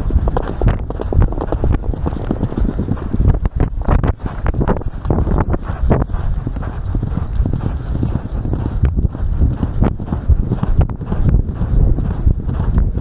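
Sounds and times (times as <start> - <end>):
horse hoofbeats on grass: 0.0 - 13.0.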